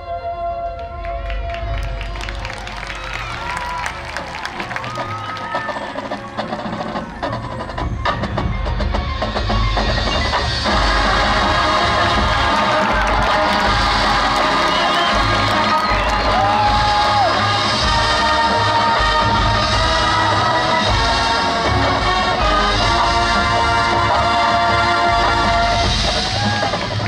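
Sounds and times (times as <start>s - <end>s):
marching band playing: 1.6s - 27.0s
percussion strikes: 4.3s - 27.0s.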